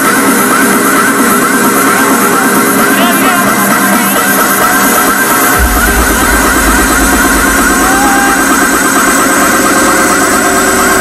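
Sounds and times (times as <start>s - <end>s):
loud electronic dance music: 0.0s - 11.0s
buzzing synth line: 5.5s - 9.7s.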